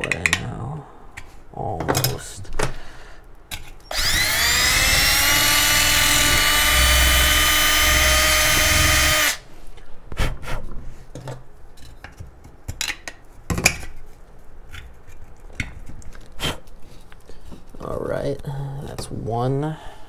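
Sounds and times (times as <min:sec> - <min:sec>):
cordless drill whine: 0:03.9 - 0:09.4.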